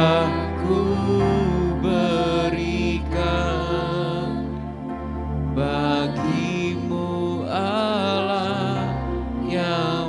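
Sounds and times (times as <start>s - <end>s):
electronic keyboard chords: 0.0s - 10.0s
voices singing worship music: 0.0s - 10.0s.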